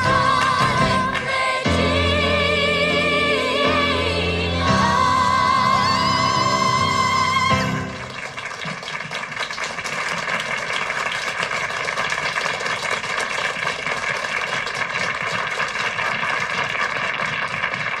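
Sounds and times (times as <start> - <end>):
crowd applauding: 5.6 - 18.0.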